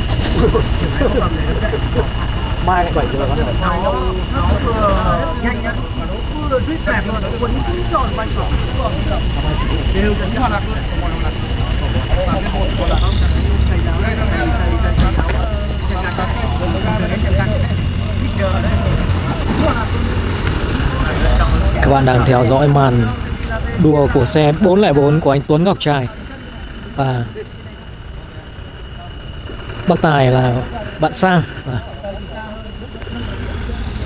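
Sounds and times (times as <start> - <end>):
race car engine rumbling: 0.0 - 34.0
spectators chattering: 0.0 - 34.0.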